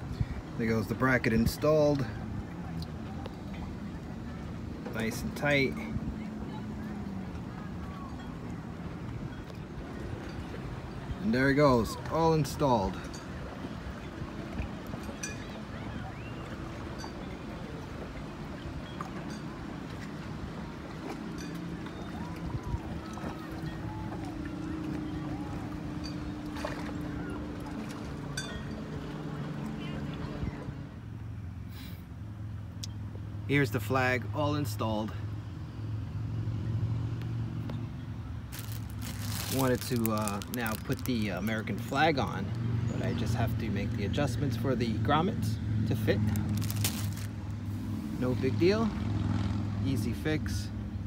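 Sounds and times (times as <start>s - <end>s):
water noise: 0.0s - 35.0s, 37.7s - 51.0s
low engine hum: 0.0s - 51.0s
wind: 0.0s - 51.0s.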